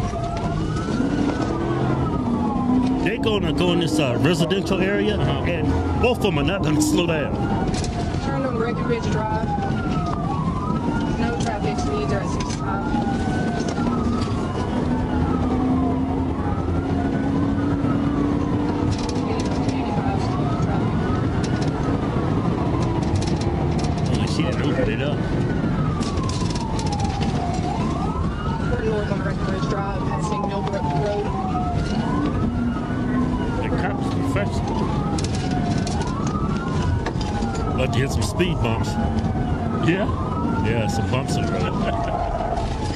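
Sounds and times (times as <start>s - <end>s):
car engine and road noise: 0.0s - 42.9s
police siren wailing: 0.0s - 42.9s.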